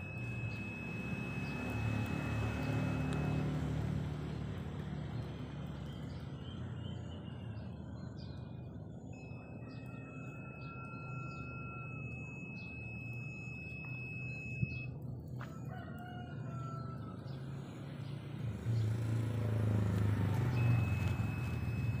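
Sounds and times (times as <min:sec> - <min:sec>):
high-pitched tone: 0:00.0 - 0:03.6, 0:09.1 - 0:15.0
small birds chirping: 0:00.0 - 0:15.4, 0:16.1 - 0:22.0
rooster crowing: 0:15.4 - 0:17.7.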